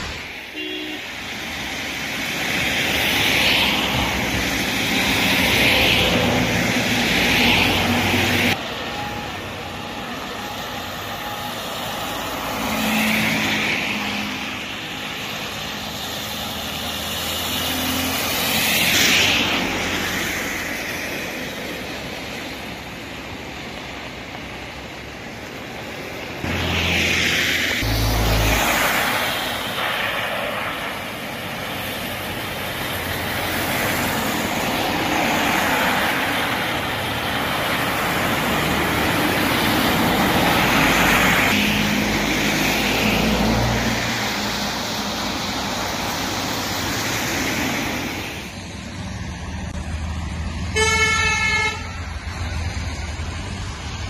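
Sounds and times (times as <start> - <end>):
background traffic: 0.0 - 54.0
tyres hissing on wet road: 0.0 - 54.0.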